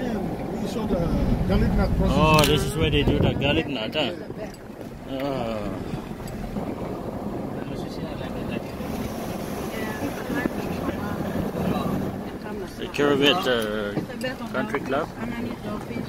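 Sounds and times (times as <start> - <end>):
car road and engine noise: 0.0 - 16.0.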